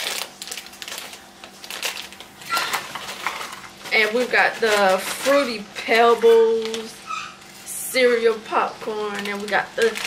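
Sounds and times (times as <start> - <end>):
plastic bag crinkling: 0.0 - 10.0
popcorn shifting in bag: 0.0 - 10.0.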